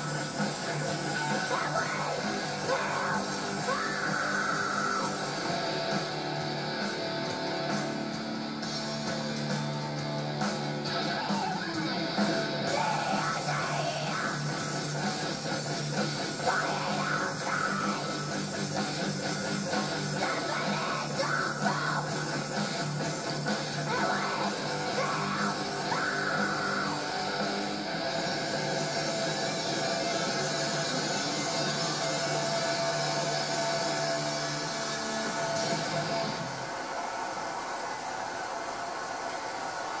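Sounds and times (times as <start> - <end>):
heavy metal music: 0.0 - 37.2
crowd cheering: 0.0 - 40.0.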